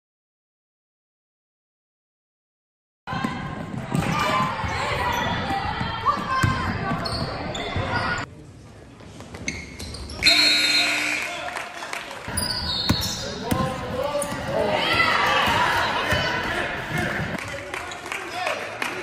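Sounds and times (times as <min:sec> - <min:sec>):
ball bouncing on court: 0:03.1 - 0:08.0, 0:12.3 - 0:17.4
voices echoing in hall: 0:09.8 - 0:19.0.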